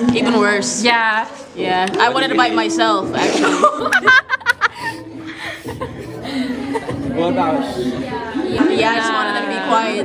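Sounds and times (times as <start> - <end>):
women laughing softly: 3.4 - 8.8.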